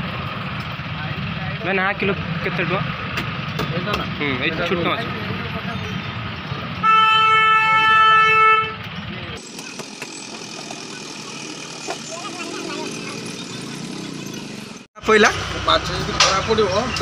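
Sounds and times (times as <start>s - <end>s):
vehicle horn blast: 6.8s - 8.8s
background bustle: 7.5s - 17.0s
faint voices: 9.0s - 17.0s.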